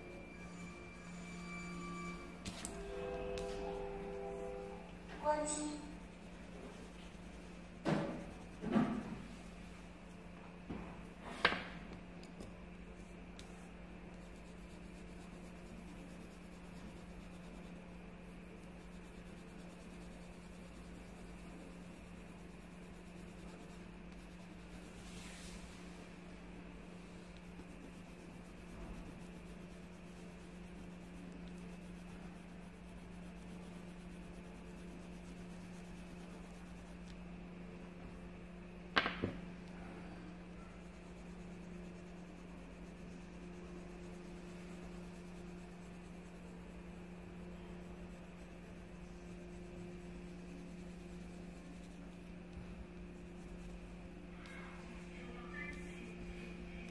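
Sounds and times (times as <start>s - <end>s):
steady low hum: 0.0s - 56.9s
pencil scratching on paper: 2.0s - 9.6s, 12.3s - 37.2s, 39.7s - 56.9s.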